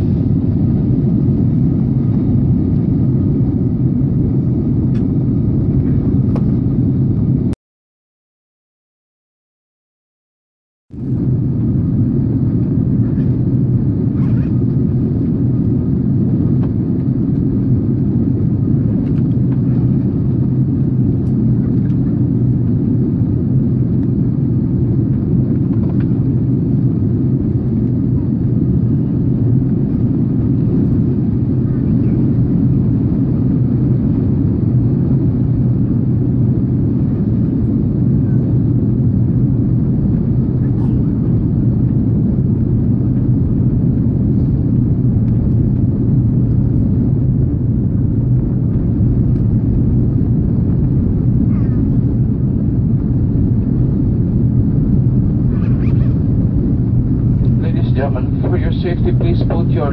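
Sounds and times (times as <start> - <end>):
airliner cabin rumble: 0.0 - 7.6, 10.9 - 59.9.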